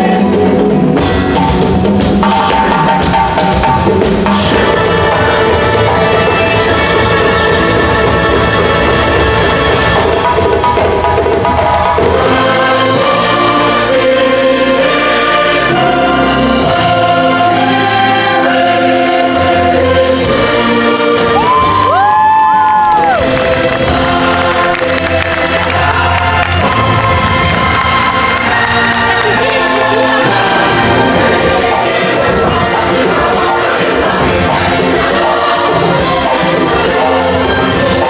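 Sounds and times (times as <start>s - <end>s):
choir singing over a band: 0.0s - 10.8s, 11.5s - 38.0s.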